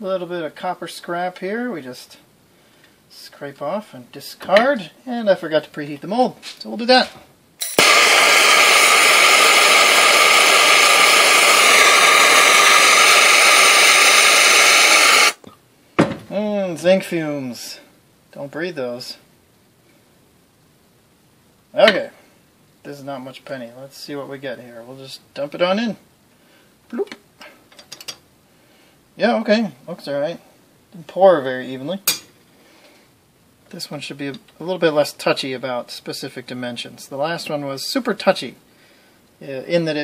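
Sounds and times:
blowtorch flame hissing: 7.6 - 15.4.

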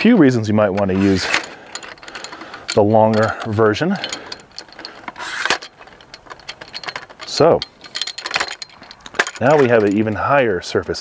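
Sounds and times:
tripod leg clicking and rattling: 0.7 - 11.0
metal scrape: 0.8 - 10.2.

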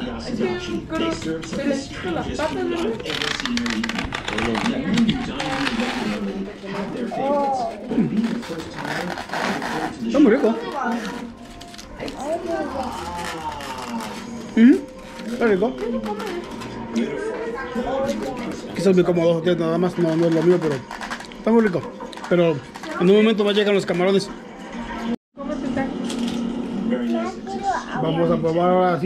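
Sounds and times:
background music: 0.0 - 29.0.

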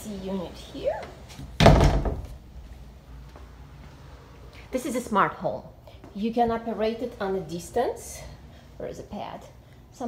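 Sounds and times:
closet door thud: 1.5 - 2.4.

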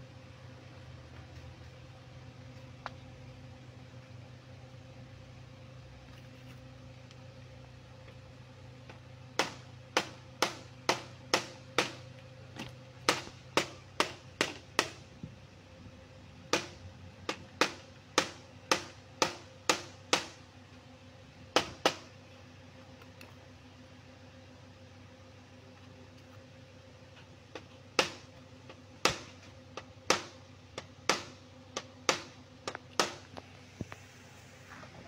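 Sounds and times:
hammer tapping metal: 27.5 - 33.4.

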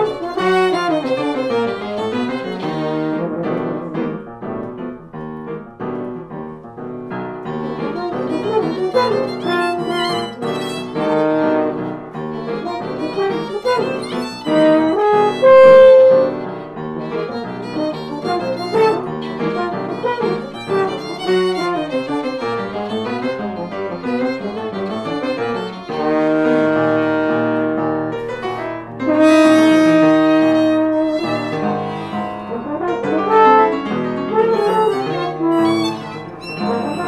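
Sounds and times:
jazz violin playing: 0.0 - 4.3, 7.4 - 37.0
piano accompaniment: 0.0 - 37.0.

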